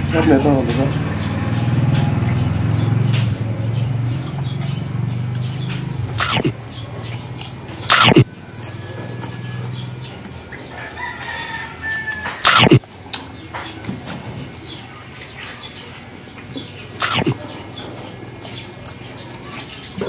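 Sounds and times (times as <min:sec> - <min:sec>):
people chewing and lip-smacking: 0:03.0 - 0:20.0
mouth clicks: 0:05.8 - 0:06.6, 0:07.4 - 0:08.3, 0:12.4 - 0:12.8, 0:17.0 - 0:17.4
rooster crowing: 0:08.0 - 0:09.7, 0:10.6 - 0:12.8.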